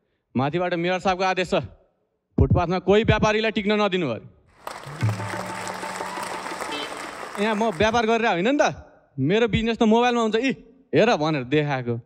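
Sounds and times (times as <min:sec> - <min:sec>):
audience clapping and cheering: 0:04.5 - 0:08.4.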